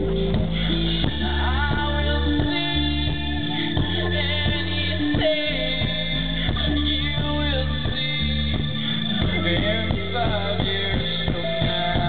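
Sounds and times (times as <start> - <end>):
live pop-rock band playing: 0.0 - 12.0
person singing: 0.0 - 12.0.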